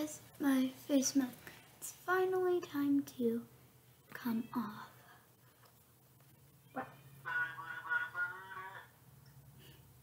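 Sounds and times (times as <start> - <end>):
man calling out through speaker: 6.8 - 9.0.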